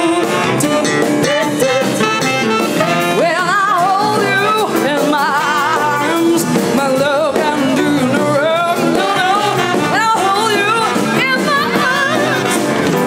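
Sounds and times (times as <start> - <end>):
woman singing with vibrato: 0.0 - 2.4, 3.0 - 13.0
live jazz band: 0.0 - 13.0.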